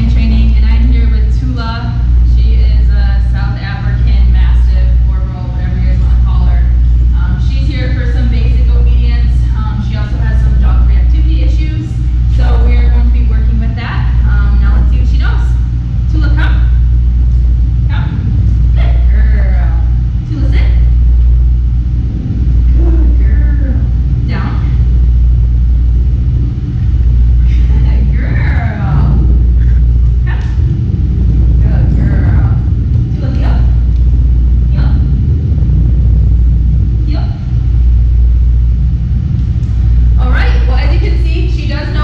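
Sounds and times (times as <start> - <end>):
woman speaking: 0.0 - 16.9, 17.8 - 21.1, 22.6 - 25.0, 27.4 - 30.8, 31.5 - 33.9, 34.6 - 35.2, 37.0 - 37.6, 40.1 - 42.0
loud low rumble: 0.0 - 42.0.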